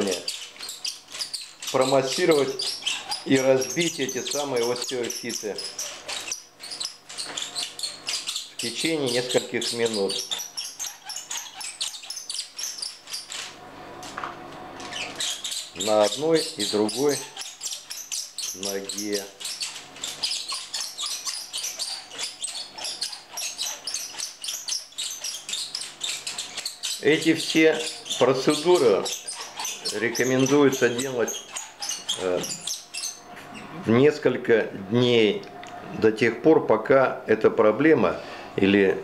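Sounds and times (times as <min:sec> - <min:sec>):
wooden massager roller clicking: 0:00.0 - 0:33.6.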